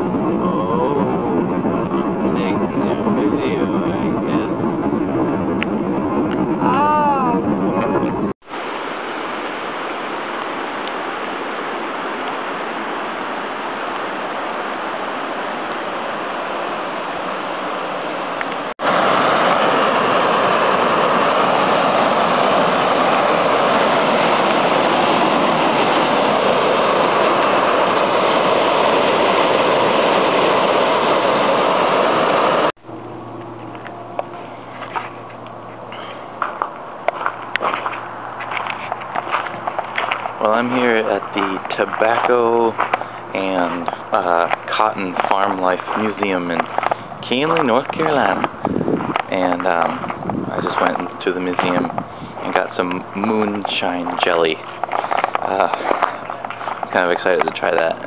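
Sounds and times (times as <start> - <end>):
river water over rocks: 8.5 - 32.7, 36.2 - 58.0
low steady hum: 32.7 - 58.0.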